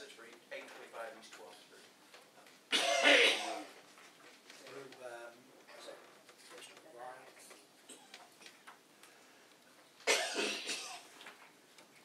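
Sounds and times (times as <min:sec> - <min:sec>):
faint clicks and rustles: 0:00.0 - 0:02.7, 0:03.6 - 0:10.1, 0:10.9 - 0:12.0
person coughing: 0:02.7 - 0:03.7, 0:10.0 - 0:11.1.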